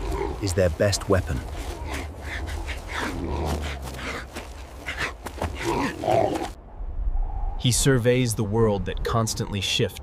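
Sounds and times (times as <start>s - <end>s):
animal growls and grunts: 0.0s - 6.6s
steady low rumble: 0.0s - 10.0s.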